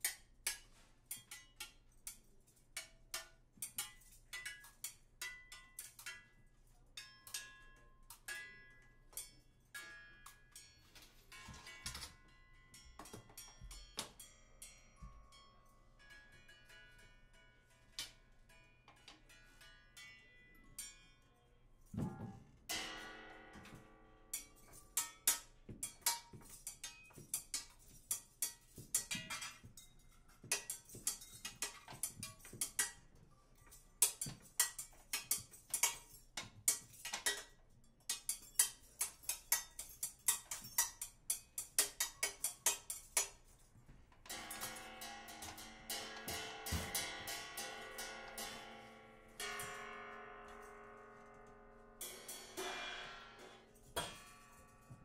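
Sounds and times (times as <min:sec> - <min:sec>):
percussion strikes on drums and cymbals: 0:44.3 - 0:48.8, 0:52.0 - 0:54.6.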